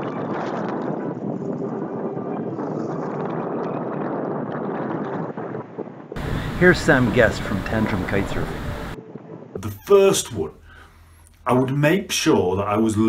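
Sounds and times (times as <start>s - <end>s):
wind on microphone: 0.0s - 9.6s
surf breaking on beach: 6.2s - 9.0s.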